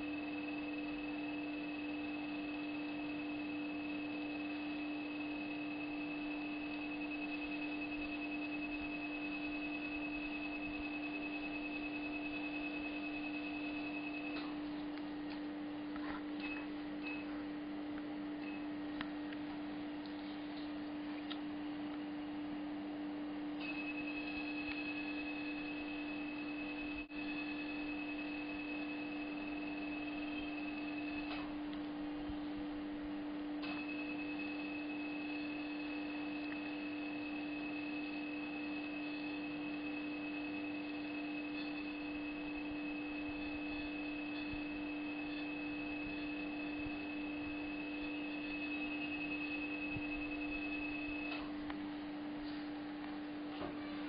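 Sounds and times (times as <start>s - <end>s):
dental laser high beep: 0.0s - 14.6s, 16.4s - 17.4s, 18.4s - 18.7s, 23.6s - 31.6s, 33.6s - 51.5s
low equipment hum: 0.0s - 54.0s.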